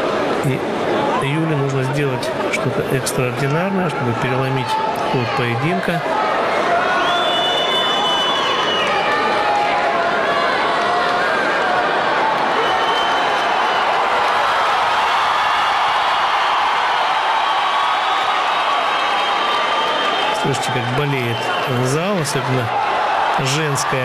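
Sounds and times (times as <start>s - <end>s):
crowd cheering and shouting: 0.0s - 24.0s.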